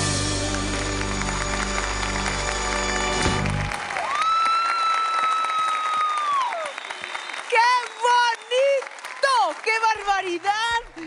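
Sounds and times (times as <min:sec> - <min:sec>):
audience applause: 0:00.0 - 0:11.0
long high whistle: 0:00.7 - 0:07.5.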